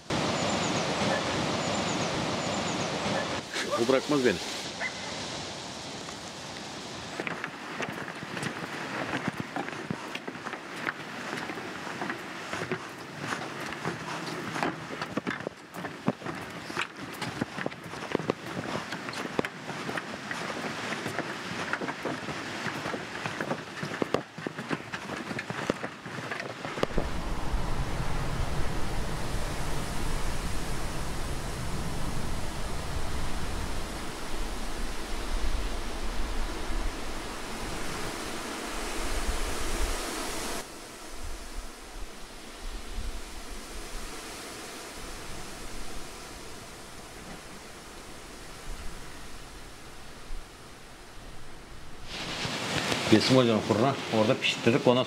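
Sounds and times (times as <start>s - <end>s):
steady outdoor hiss: 0.0s - 55.0s
footsteps on wooden walkway: 6.0s - 27.6s
wind gusting over microphone: 25.9s - 54.6s.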